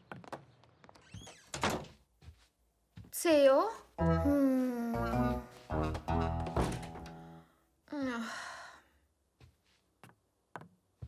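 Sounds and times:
cartoon music: 4.0 - 6.6.

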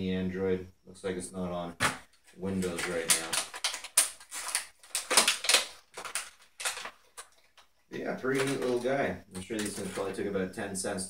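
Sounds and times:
packaging crinkling: 1.8 - 7.7, 8.3 - 10.2.

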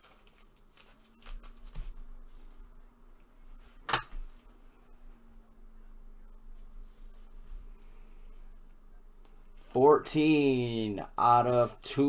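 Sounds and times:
plastic sleeve rustling: 0.0 - 2.8.

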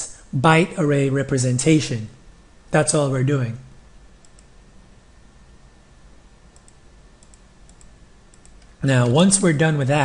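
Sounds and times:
low background hiss: 0.0 - 10.0
keystrokes on computer keyboard: 4.2 - 4.5, 6.5 - 8.7.

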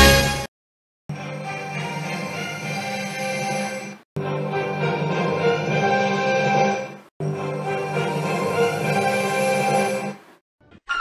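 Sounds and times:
logo jingle music: 1.1 - 10.2.

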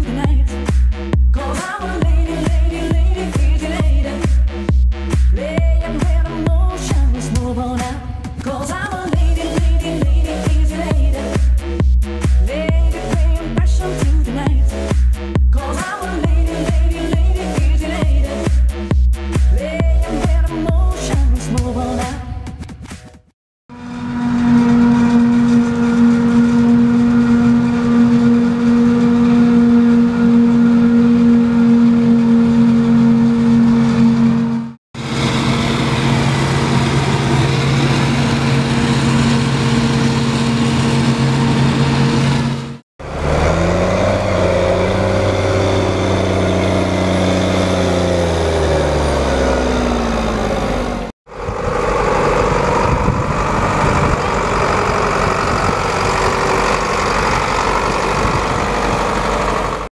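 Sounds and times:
machine running down: 23.7 - 59.9.

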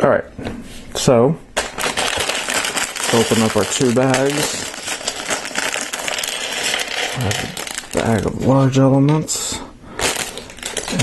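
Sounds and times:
plastic pieces clattering on table: 1.6 - 8.3, 10.0 - 11.0.

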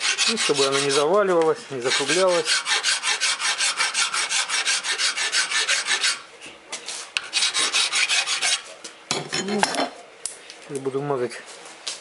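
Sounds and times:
hand file scraping metal: 0.0 - 6.2, 7.2 - 8.7.

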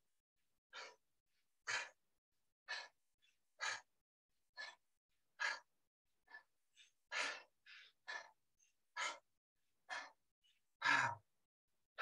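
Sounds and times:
person breathing hard: 0.7 - 11.4.

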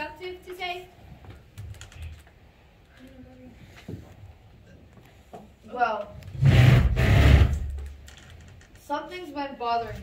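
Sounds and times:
loud rumbling burst: 6.4 - 7.8.

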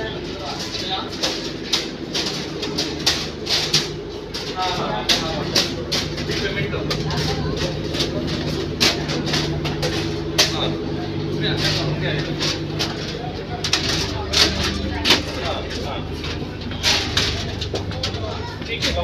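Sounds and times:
boat engine droning: 0.0 - 19.0
people's voices: 0.0 - 19.0
sharp knocks and clatter: 0.4 - 10.9, 11.5 - 19.0.

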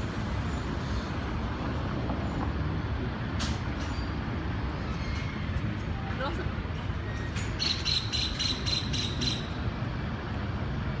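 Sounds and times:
street traffic rumble: 0.0 - 11.0.

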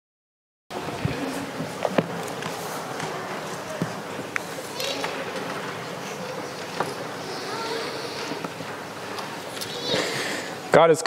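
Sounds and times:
murmur of voices: 0.7 - 11.0
child's voice: 7.2 - 8.4, 9.6 - 10.2.

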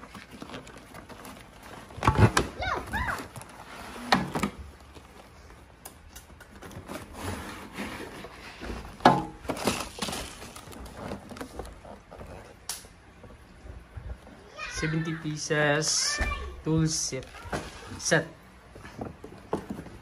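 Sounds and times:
cardboard rustling and scraping: 0.0 - 15.2, 16.8 - 20.0.

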